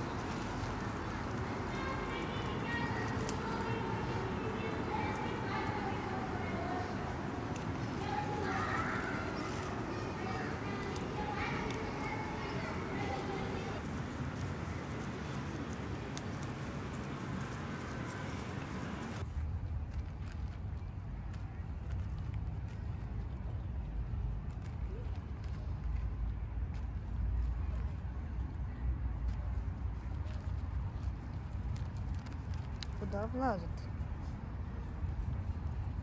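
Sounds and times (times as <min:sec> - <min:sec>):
faint voices: 0:00.0 - 0:19.2
small clicks and rustles: 0:00.0 - 0:36.0.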